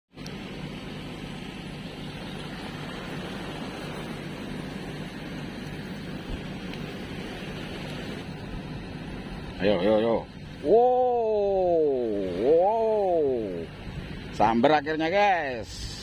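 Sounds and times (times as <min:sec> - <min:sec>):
boat engine droning: 0:00.1 - 0:16.0
wind and sea hiss: 0:00.1 - 0:16.0.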